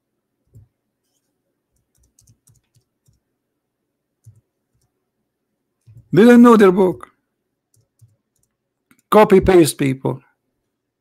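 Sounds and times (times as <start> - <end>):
computer keyboard clicking: 1.8 - 3.2, 4.2 - 4.9, 7.7 - 9.1.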